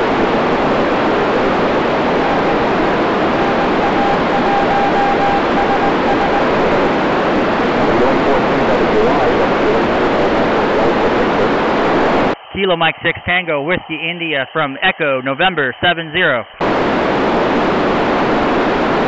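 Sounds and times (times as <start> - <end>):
radio static hiss: 0.0 - 19.0
faint steady whistle: 2.1 - 6.8.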